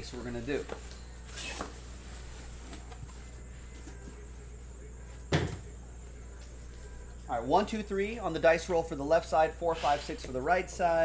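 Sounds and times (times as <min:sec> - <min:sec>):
faint handling of boxes: 0:00.0 - 0:05.3.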